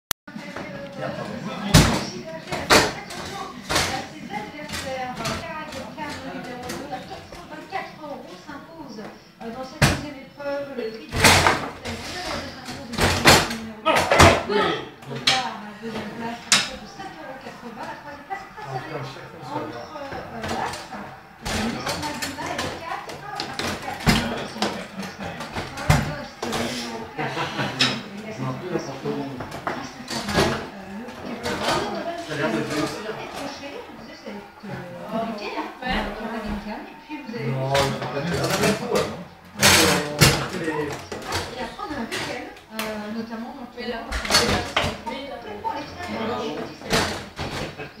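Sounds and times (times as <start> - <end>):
people talking: 0.3 - 48.0
people's voices: 0.3 - 48.0.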